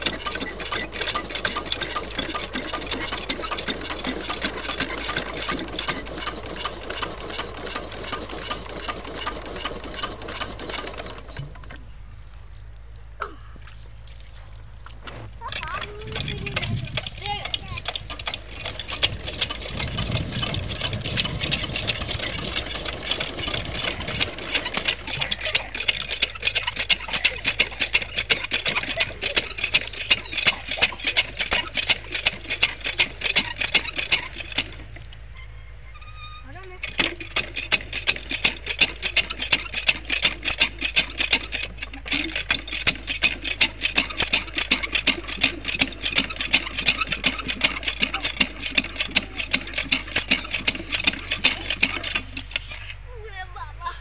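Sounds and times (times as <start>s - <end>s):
diesel engine knocking: 0.0s - 12.1s, 15.4s - 35.8s, 36.6s - 54.0s.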